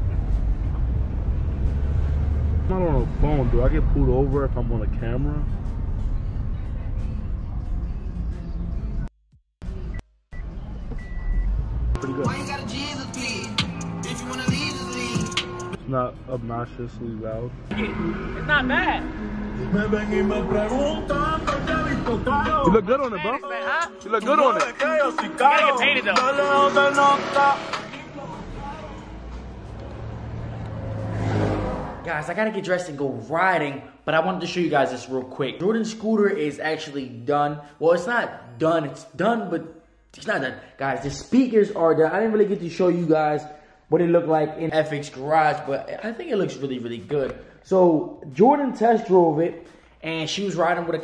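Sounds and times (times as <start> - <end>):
car engine and road noise: 0.0 - 23.4, 24.2 - 33.3.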